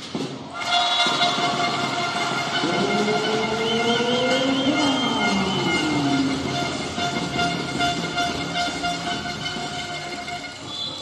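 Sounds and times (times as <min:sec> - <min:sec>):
horns blown in crowd: 0:00.5 - 0:11.0
low horn note rising in pitch: 0:00.6 - 0:11.0.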